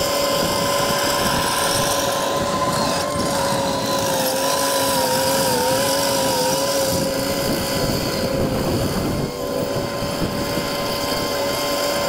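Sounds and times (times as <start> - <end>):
wavering machine whine: 0.0 - 12.0.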